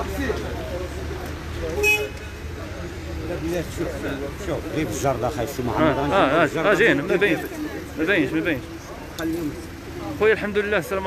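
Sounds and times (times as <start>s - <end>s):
street traffic noise: 0.0s - 11.0s
car horn toot: 1.8s - 2.4s.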